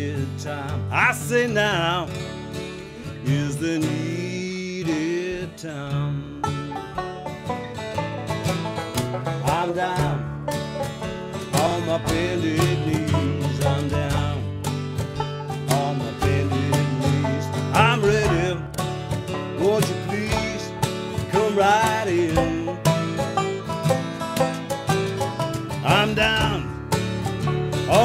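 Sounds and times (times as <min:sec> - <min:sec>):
man singing: 0:00.0 - 0:07.0, 0:09.4 - 0:10.3, 0:11.5 - 0:14.6, 0:15.6 - 0:18.8, 0:19.5 - 0:23.3, 0:25.8 - 0:26.8
picked banjo: 0:00.0 - 0:28.0
strummed acoustic guitar: 0:00.0 - 0:28.0.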